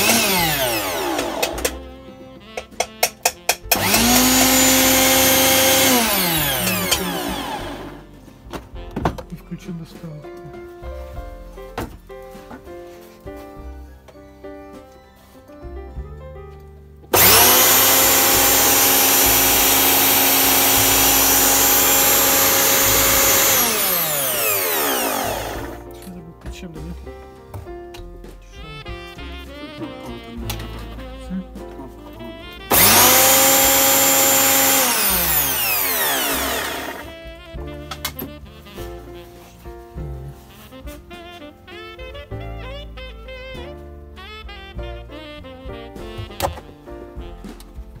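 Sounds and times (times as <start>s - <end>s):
electric lawnmower motor whine: 0.0s - 1.8s, 3.7s - 8.0s, 17.2s - 25.8s, 32.7s - 37.1s.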